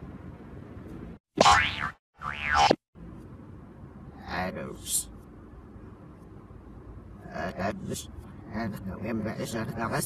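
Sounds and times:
cartoon boing sound effect: 1.4s - 2.7s.

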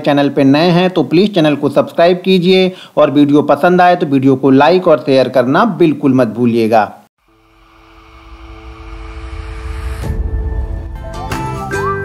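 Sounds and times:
impact hit: 7.2s - 11.6s
rumbling whoosh with held tones: 7.3s - 11.2s.

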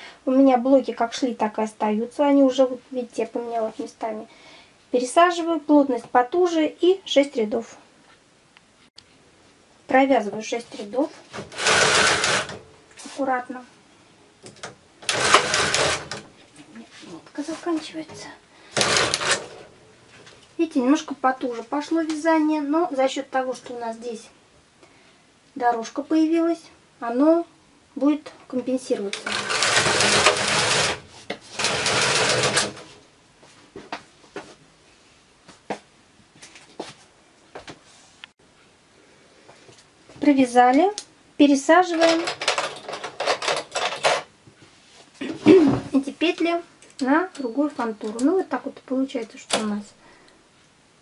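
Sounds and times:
knitting machine carriage sliding: 11.3s - 12.6s, 15.0s - 16.3s, 18.7s - 19.7s, 29.1s - 33.0s.

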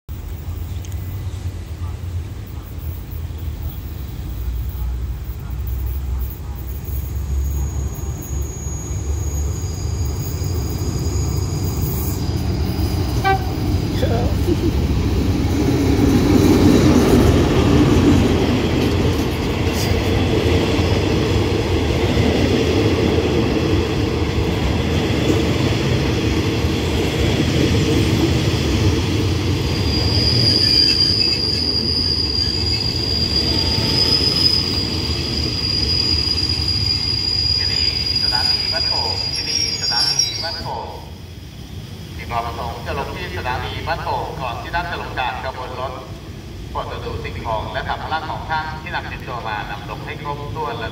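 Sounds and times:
train wheels rumbling on rails: 0.1s - 50.9s
wheels and brakes squealing: 2.7s - 13.6s, 29.4s - 41.0s.

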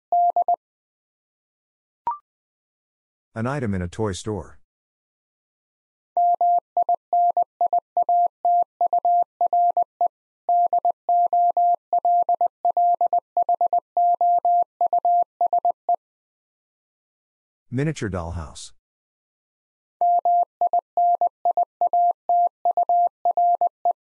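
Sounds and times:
morse code tone: 10.5s - 15.8s.

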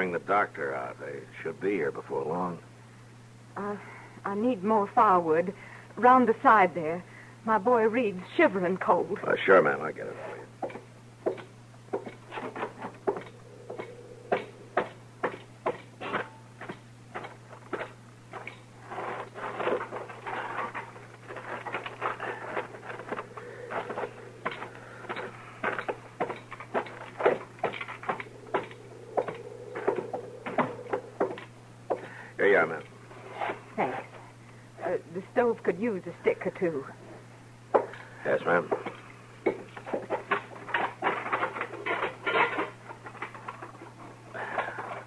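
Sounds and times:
low recording hum: 0.0s - 45.0s
footsteps: 17.5s - 31.6s.

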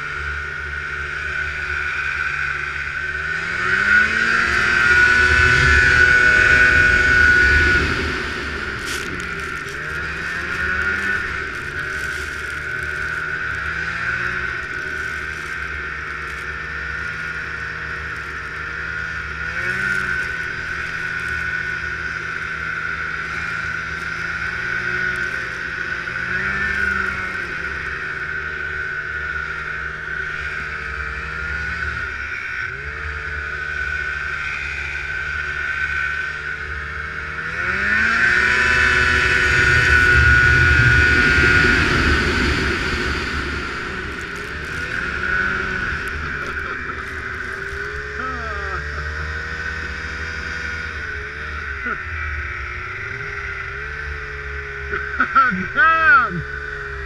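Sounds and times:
snowmobile engine revving: 0.0s - 57.0s.

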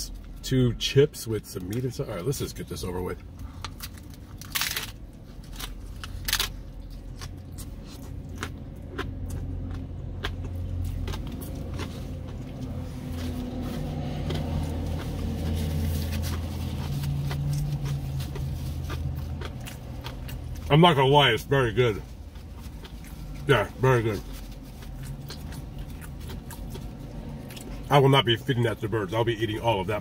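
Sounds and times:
low hum: 0.0s - 28.8s
chewing with crackles: 3.2s - 30.0s
crunching bites into fried shell: 3.5s - 20.7s, 22.1s - 27.9s.

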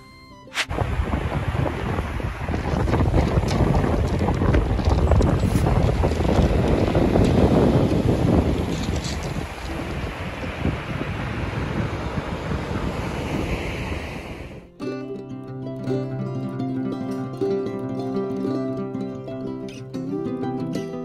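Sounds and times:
waves breaking on shingle: 0.6s - 10.8s
wind buffeting microphone: 0.6s - 14.7s.

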